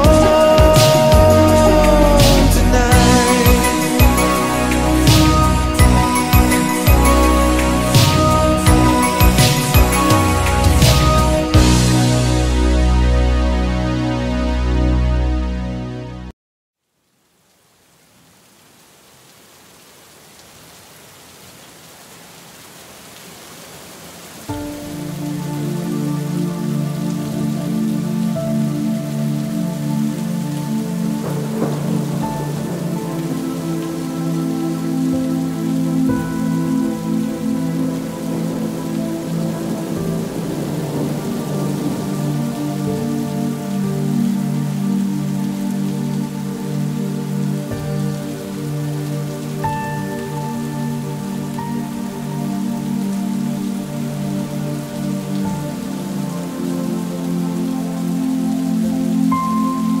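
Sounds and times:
rain falling: 0.0s - 13.7s, 16.8s - 60.0s
slow sustained music chords: 0.0s - 16.3s, 24.4s - 60.0s.

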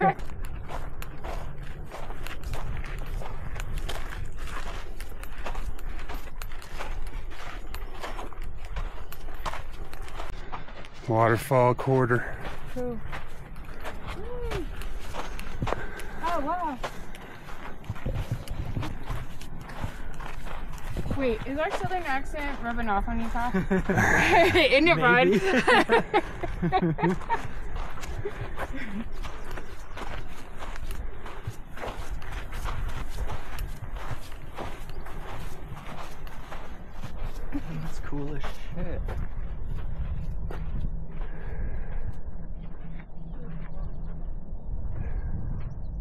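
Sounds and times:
footsteps on gravelly trail: 0.0s - 45.9s
low wind rumble: 0.1s - 46.0s
low steady rumble: 38.7s - 46.0s.

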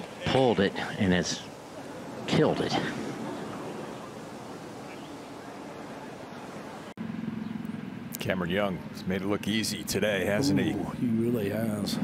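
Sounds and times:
crowd and open air hiss: 0.0s - 12.0s.

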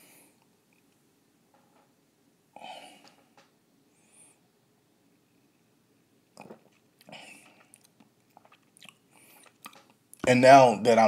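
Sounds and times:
person sipping and swallowing: 6.3s - 10.0s
lip and tongue clicks: 6.4s - 10.2s.

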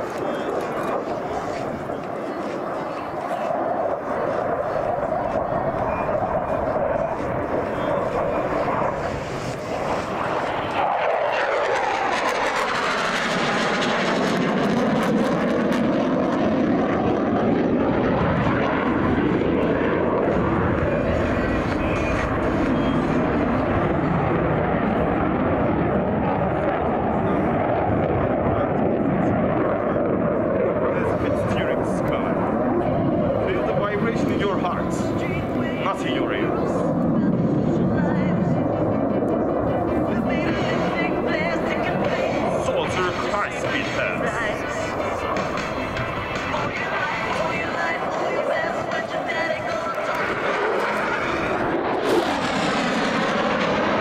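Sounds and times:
fighter jet roaring: 0.0s - 54.0s.

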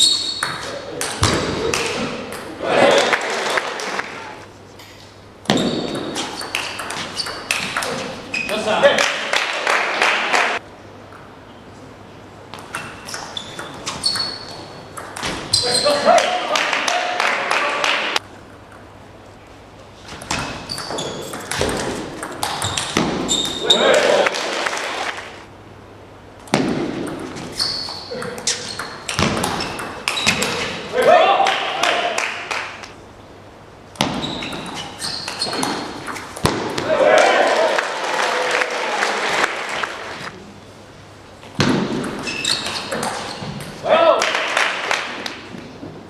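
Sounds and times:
spectators' voices: 1.9s - 4.4s
ping pong ball clicking off bats: 6.0s - 8.0s, 20.2s - 23.1s.

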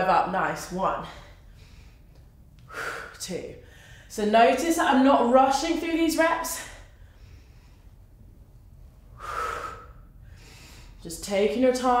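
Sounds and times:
faint breath: 1.1s - 4.1s, 9.1s - 11.0s
woman exhaling strongly: 9.2s - 11.0s.

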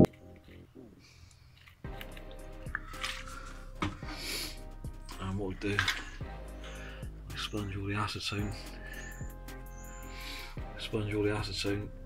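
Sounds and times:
plastic bottle handling: 2.7s - 4.2s, 5.5s - 6.2s.

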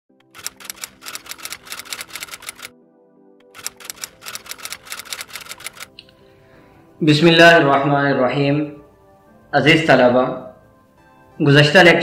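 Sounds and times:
typewriter keystrokes: 0.2s - 2.7s, 3.5s - 6.0s.

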